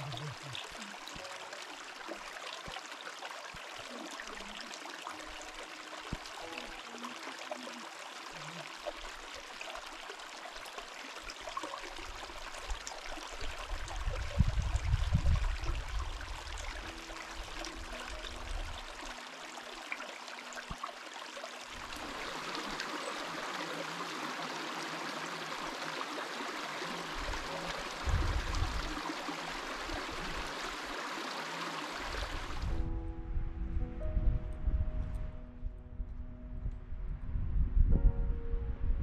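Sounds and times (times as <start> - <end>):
creek trickling over rocks: 0.0 - 32.8
low rumble: 32.7 - 39.0.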